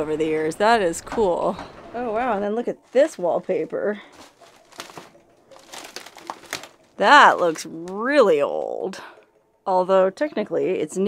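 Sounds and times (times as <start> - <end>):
footsteps crunching on debris: 2.8 - 8.0.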